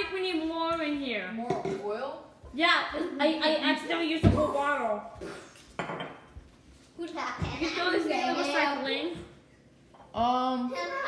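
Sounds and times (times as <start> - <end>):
glass bottle clunk on countertop: 5.8 - 6.2.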